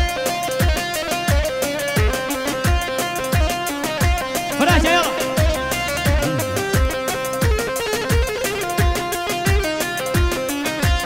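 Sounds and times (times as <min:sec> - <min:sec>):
amplified dance music melody: 0:04.2 - 0:07.5
deep drum beat: 0:04.5 - 0:07.2.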